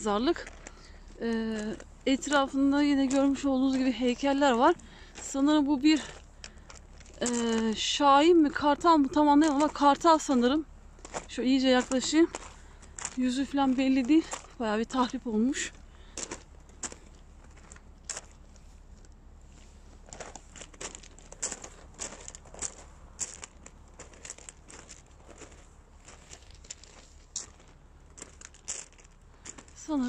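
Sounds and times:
footsteps on gravel: 0.0 - 30.0.

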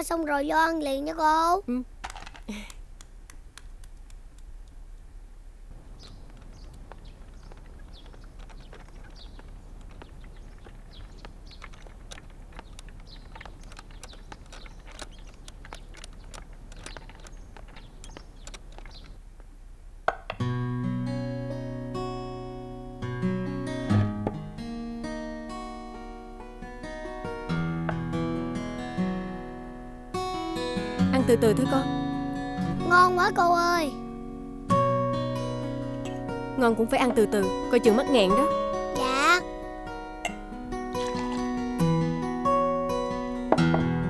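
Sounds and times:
bird chirps: 5.9 - 19.2
scattered clicks: 11.2 - 19.2
soft acoustic guitar music: 20.4 - 44.0.

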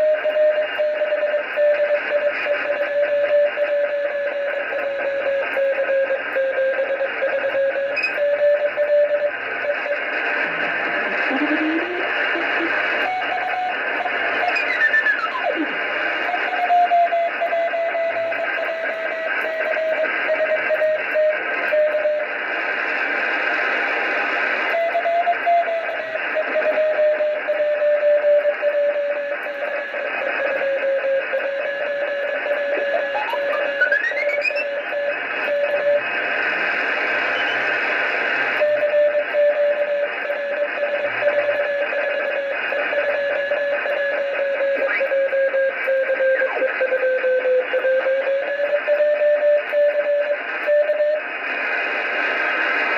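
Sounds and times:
morse code tone: 0.0 - 10.1, 10.9 - 15.8, 30.4 - 34.9, 37.2 - 37.7
gliding radio whistles: 0.0 - 52.9
radio receiver hiss: 0.0 - 52.9.

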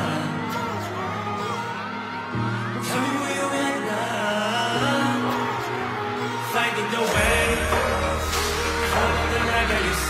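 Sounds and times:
man singing: 0.0 - 10.0
heavy bass line and beat: 7.2 - 10.0.

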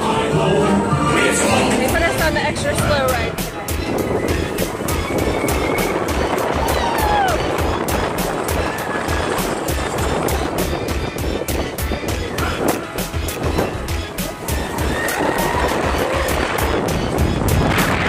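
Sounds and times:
music: 0.0 - 18.0
roller coaster wheels clacking: 1.6 - 18.0.

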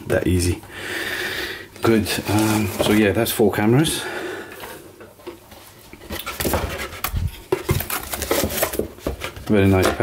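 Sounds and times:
cardboard box rustling and scraping: 6.1 - 10.0.

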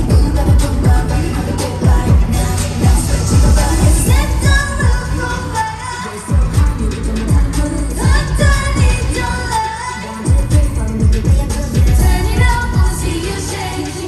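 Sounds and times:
pop dance track: 0.0 - 14.0
woman singing: 0.0 - 14.0.

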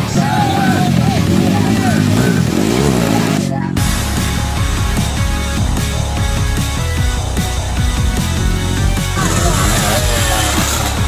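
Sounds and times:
spectators shouting: 0.0 - 2.1, 9.2 - 11.0
background music: 0.0 - 11.0
dirt bike engine revving: 0.0 - 11.0.

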